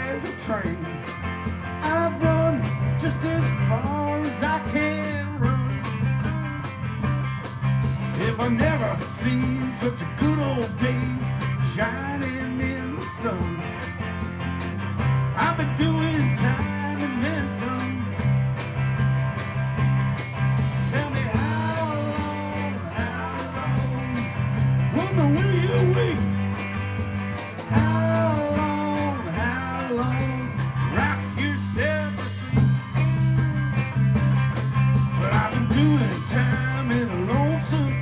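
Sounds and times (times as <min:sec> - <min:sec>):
electric guitar lead line: 0:00.0 - 0:38.0
rock band playing live: 0:00.0 - 0:38.0.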